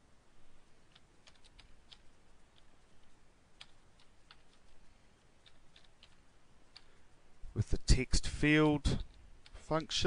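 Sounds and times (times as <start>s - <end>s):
keyboard typing: 0.8s - 4.8s, 5.4s - 7.0s.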